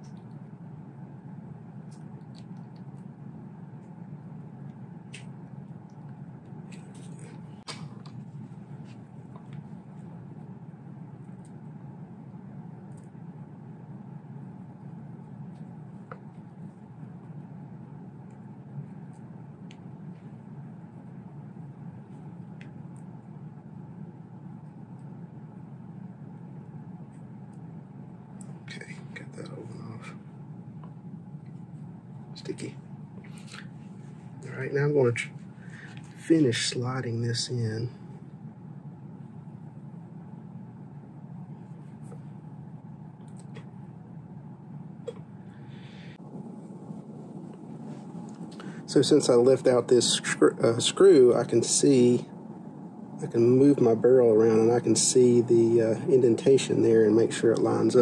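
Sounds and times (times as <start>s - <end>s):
low room hum: 0.0s - 58.0s.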